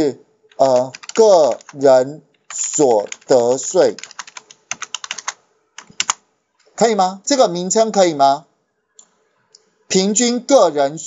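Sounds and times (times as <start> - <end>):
computer keyboard typing: 0.5 - 6.2.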